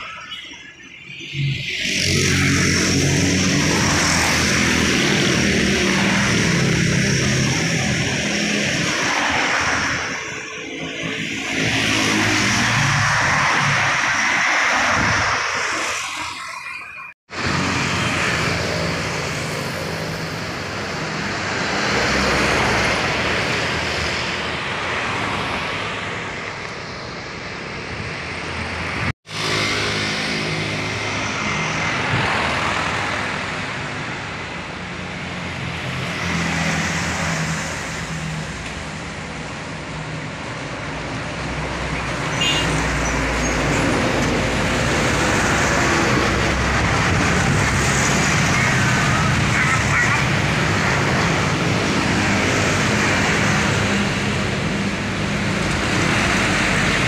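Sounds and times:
cars passing: 0.0 - 57.0
motorcycles passing: 1.3 - 16.6, 28.3 - 39.2, 41.0 - 57.0.

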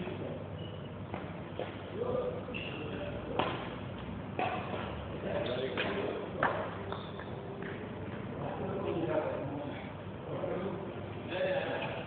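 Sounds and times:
racket hitting shuttlecock: 3.3 - 5.0, 5.6 - 8.2.

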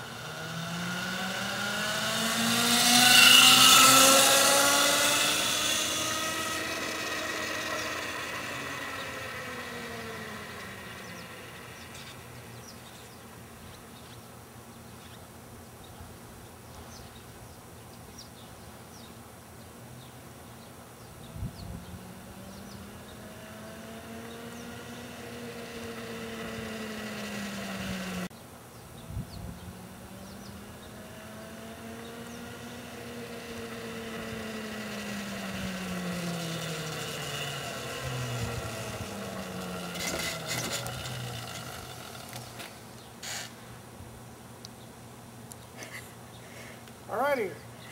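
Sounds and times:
motorcycle chain drive whining: 0.0 - 13.4, 21.5 - 28.3, 29.5 - 43.7.

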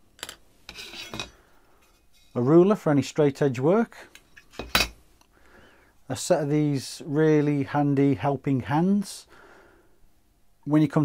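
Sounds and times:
metallic clinking and scraping: 0.2 - 2.4, 4.2 - 5.0.

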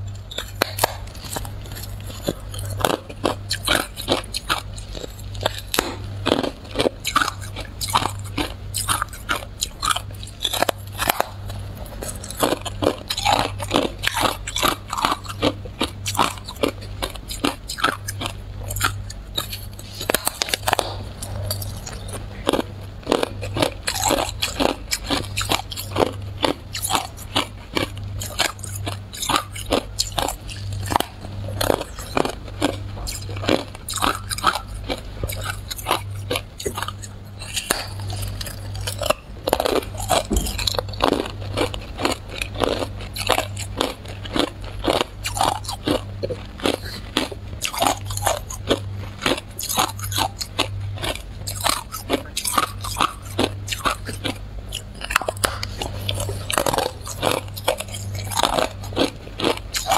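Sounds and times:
ice crunching while chewed: 0.0 - 59.9
low hum: 0.0 - 59.9.

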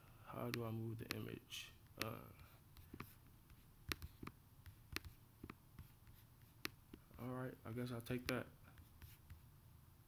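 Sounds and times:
computer mouse clicks: 3.8 - 5.6.

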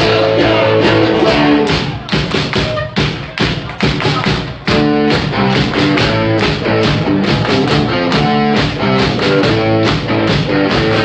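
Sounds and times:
live rock band: 0.0 - 2.1, 3.9 - 11.0.

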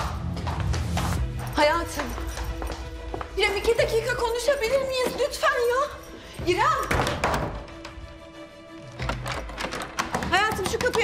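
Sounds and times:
background music held notes: 0.0 - 11.0.

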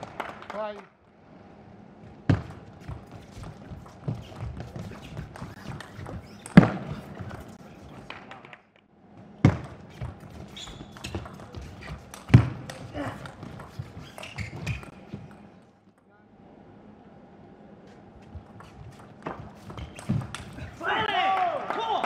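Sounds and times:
loud sharp racket hits: 4.0 - 8.2, 9.4 - 15.0.

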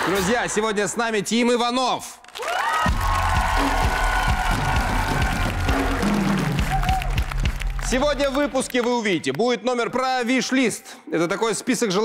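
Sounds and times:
drum kit played hard: 2.9 - 7.8
sustained instrumental music: 2.9 - 8.1.

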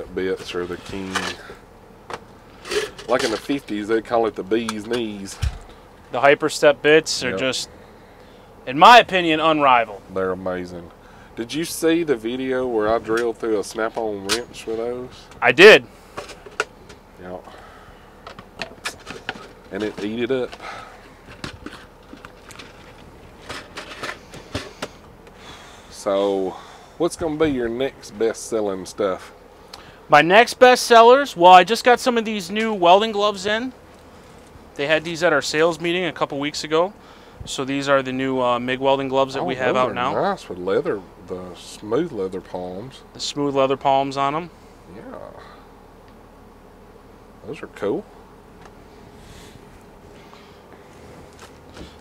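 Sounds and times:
men talking: 0.0 - 1.6, 2.7 - 16.0, 17.2 - 17.8, 19.6 - 21.0, 25.4 - 33.9, 34.7 - 45.7, 47.4 - 48.1.

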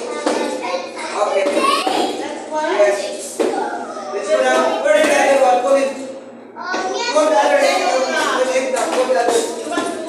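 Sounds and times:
children chattering and calling: 0.0 - 10.0.

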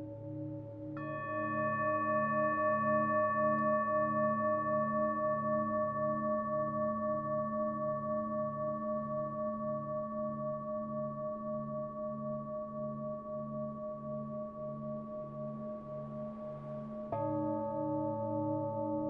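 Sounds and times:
singing bowl ringing hum: 0.0 - 19.0.

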